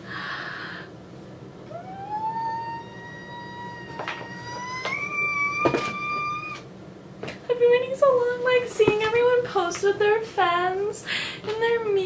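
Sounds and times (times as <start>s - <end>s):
woman's high-pitched excited squeal: 1.7s - 6.6s.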